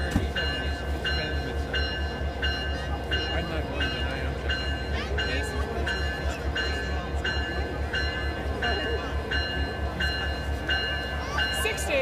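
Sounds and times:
diesel locomotive rumble: 0:00.0 - 0:12.0
faint voices talking: 0:00.0 - 0:12.0.

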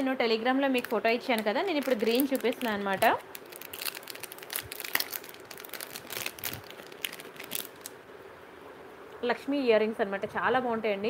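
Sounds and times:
plastic pouches crinkling: 0:00.6 - 0:08.0.

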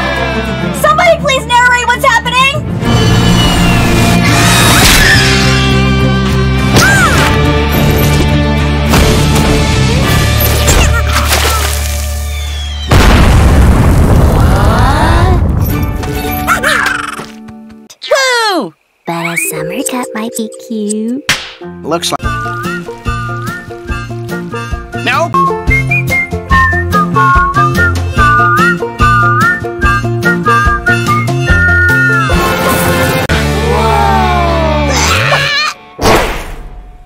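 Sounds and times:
background music: 0:00.0 - 0:12.7, 0:19.1 - 0:36.0
whistled tune with sliding notes: 0:02.8 - 0:05.4, 0:12.1 - 0:13.0, 0:22.4 - 0:32.6
cartoon explosion boom: 0:12.9 - 0:15.6.

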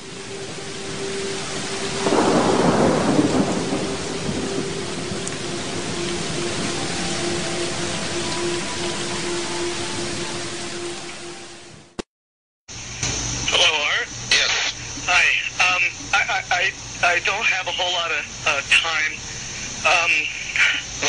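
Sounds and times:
thunder rumble: 0:00.0 - 0:09.2
steady rain: 0:00.0 - 0:12.0, 0:12.7 - 0:21.0
faint steady hum: 0:12.7 - 0:21.0.

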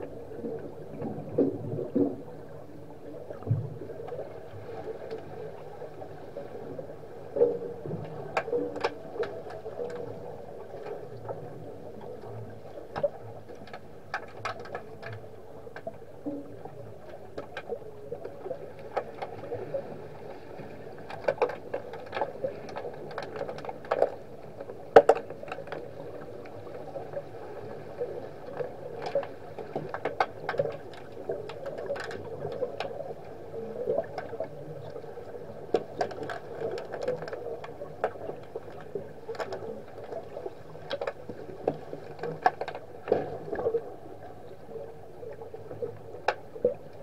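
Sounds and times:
underwater clicks and clacks: 0:00.0 - 0:47.0.

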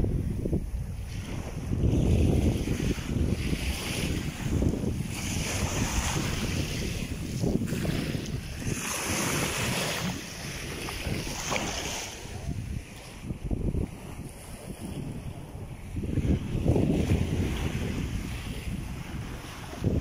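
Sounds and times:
small waves washing on sand: 0:00.0 - 0:20.0
wind buffeting microphone: 0:00.0 - 0:20.0.

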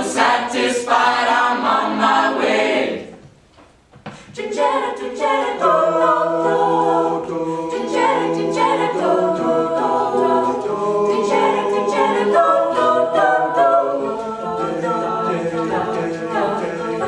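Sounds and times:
a cappella group singing in harmony: 0:00.0 - 0:03.2, 0:04.3 - 0:17.0.

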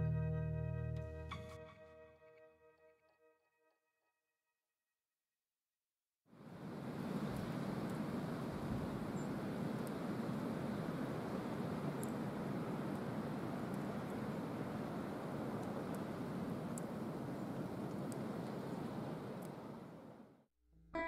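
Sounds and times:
low rumble and hiss: 0:00.0 - 0:01.2
faint high ticks: 0:12.0 - 0:12.2, 0:16.7 - 0:17.0.

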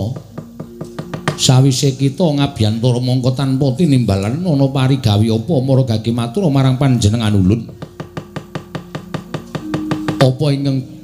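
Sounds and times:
soft gamelan tones: 0:00.0 - 0:11.0
fast wooden knocking: 0:00.1 - 0:01.5, 0:07.6 - 0:10.4.

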